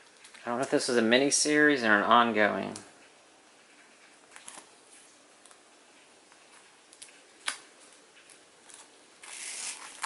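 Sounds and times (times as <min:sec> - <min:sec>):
plastic sleeves rustling: 0:00.0 - 0:10.0.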